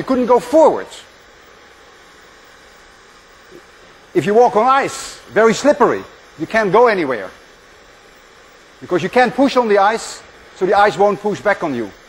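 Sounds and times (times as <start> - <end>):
gas torch flame hissing: 0.0 - 12.0.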